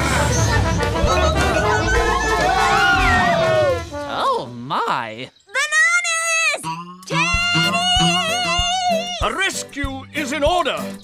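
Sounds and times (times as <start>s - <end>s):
music: 0.0s - 4.2s, 6.6s - 11.0s
cartoon voices wailing: 1.0s - 3.8s.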